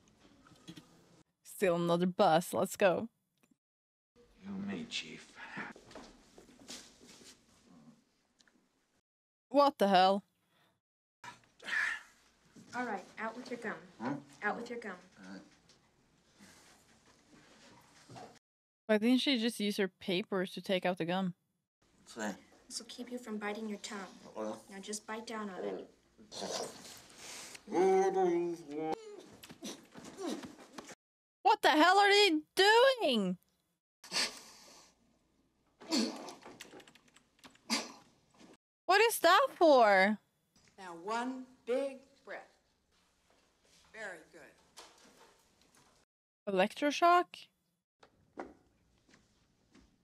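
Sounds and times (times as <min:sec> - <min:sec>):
person whimpering: 0:27.7 - 0:30.4.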